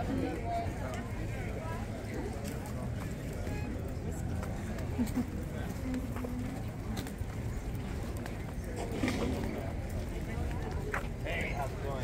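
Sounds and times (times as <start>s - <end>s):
voices of passers-by: 0.0s - 12.0s.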